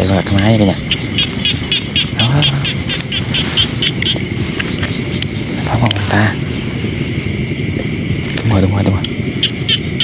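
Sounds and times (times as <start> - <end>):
insect chirping: 0.0 - 10.0
steady low rumble: 0.0 - 10.0.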